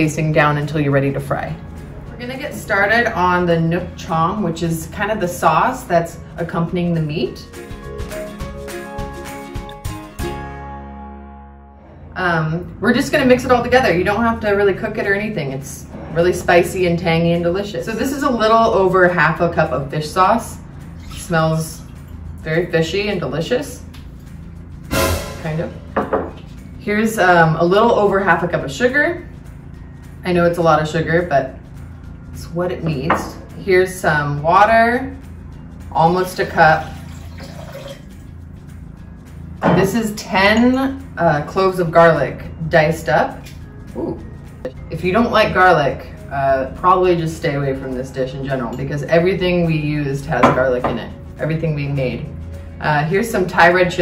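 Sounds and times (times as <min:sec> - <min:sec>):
notes struck in quick succession: 0:24.9 - 0:25.9
water pouring into bowl: 0:36.5 - 0:38.3.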